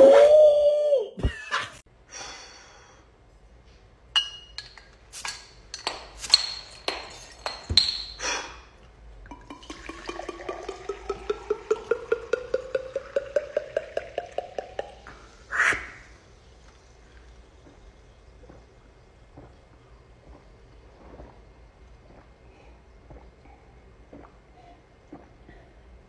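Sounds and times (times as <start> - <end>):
glass clinks: 4.2 - 8.2
water pouring into glass: 9.2 - 15.3.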